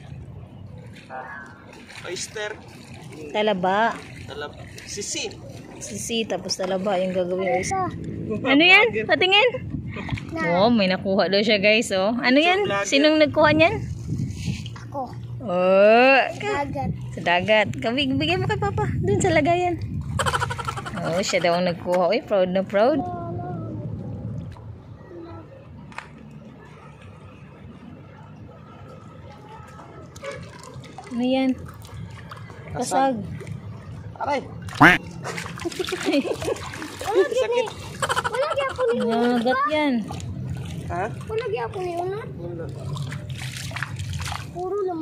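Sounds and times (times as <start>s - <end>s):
low steady rumbling: 2.5s - 29.7s
hand splashing in water: 34.6s - 38.4s, 42.8s - 44.6s.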